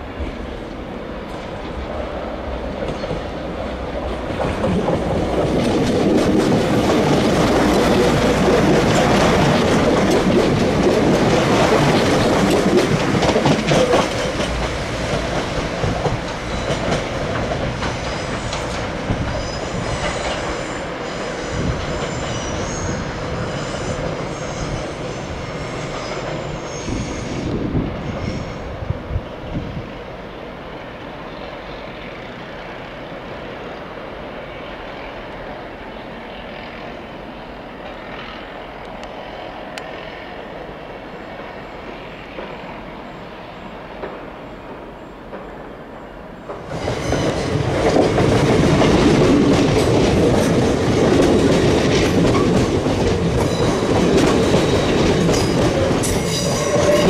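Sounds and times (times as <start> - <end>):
distant trains rumbling: 0.0 - 57.0
train passing close: 0.0 - 57.0
train squeals and clanks: 0.0 - 57.0
wheels clattering over rail joints: 4.0 - 20.7, 46.5 - 57.0.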